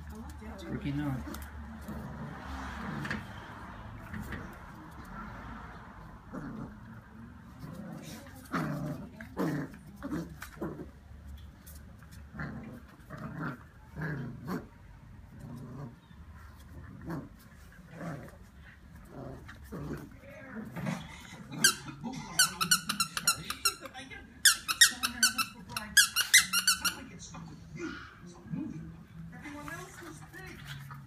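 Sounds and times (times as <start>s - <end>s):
puppy growling low: 0.6s - 5.1s, 6.0s - 11.2s, 12.0s - 23.8s
toy squeaker squeaking: 22.4s - 27.0s.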